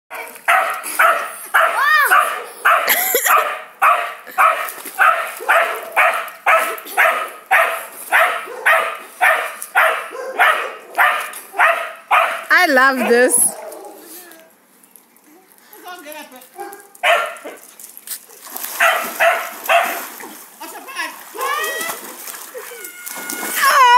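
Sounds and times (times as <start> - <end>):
dog barking rapidly: 0.1 - 14.0, 16.6 - 17.6, 18.8 - 20.0.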